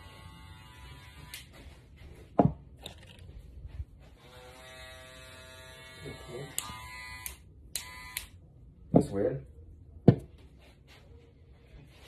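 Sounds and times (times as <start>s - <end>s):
electric hair clippers buzzing: 0.0s - 1.5s, 4.2s - 8.4s.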